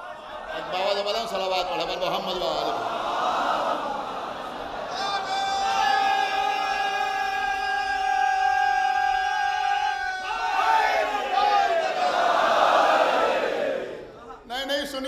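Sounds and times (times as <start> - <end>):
crowd shouting: 0.0 - 14.2.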